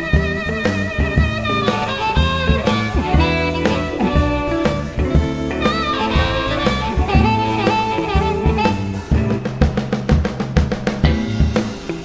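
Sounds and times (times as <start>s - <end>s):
electric blues band playing: 0.0s - 12.0s
lead guitar with bent notes: 0.0s - 12.0s
snare drum fill: 0.9s - 12.0s.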